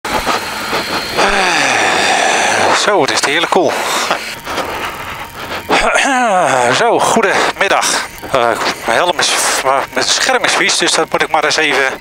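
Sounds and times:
motorcycle engine: 0.0 - 11.6.

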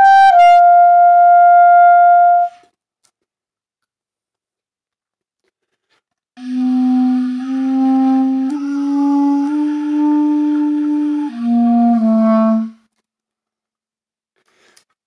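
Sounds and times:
solo clarinet low notes: 0.0 - 2.6, 6.4 - 12.8.

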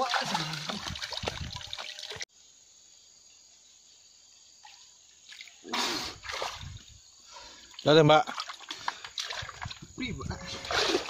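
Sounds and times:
water splashing and sloshing: 0.0 - 2.3, 4.6 - 11.0.

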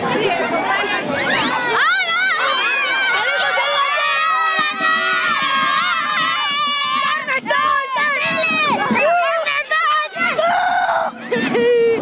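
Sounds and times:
children shouting and cheering: 0.0 - 12.0.

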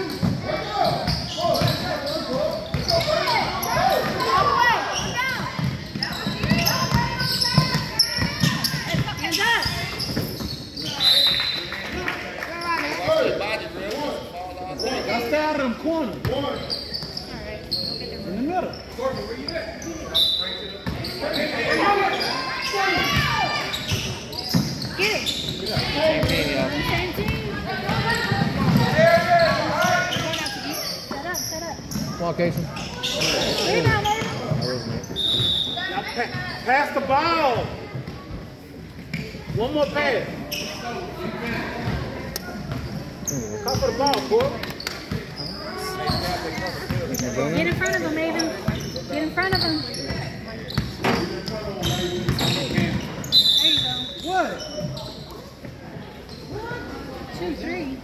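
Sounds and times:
players and spectators shouting: 0.0 - 10.0, 21.2 - 23.9, 24.9 - 30.9.

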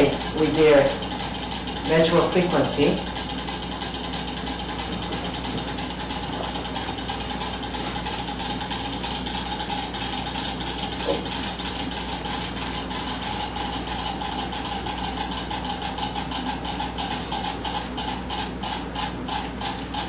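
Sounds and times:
rapid uneven clicking: 0.0 - 20.0
steady hum: 0.0 - 20.0.

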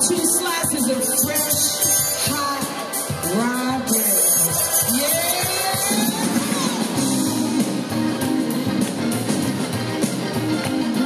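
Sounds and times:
blues band playing: 0.0 - 11.0.

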